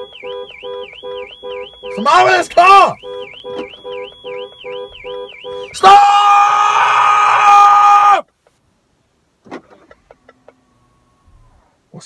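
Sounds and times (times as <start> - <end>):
pulsing low beep: 0.0 - 2.2, 3.0 - 5.7
car alarm warbling siren: 0.0 - 6.0.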